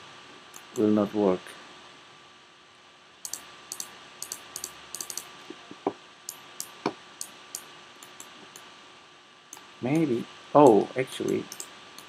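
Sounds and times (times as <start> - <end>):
mouse and keyboard clicks: 3.3 - 5.3, 6.3 - 8.6, 11.3 - 12.0.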